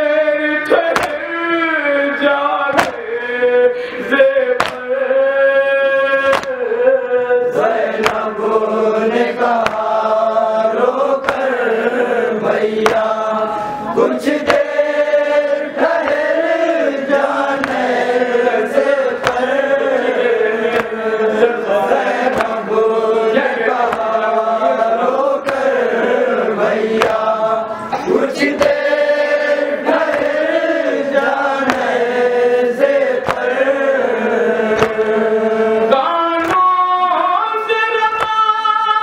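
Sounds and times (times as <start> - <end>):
men chanting in unison: 0.0 - 39.0.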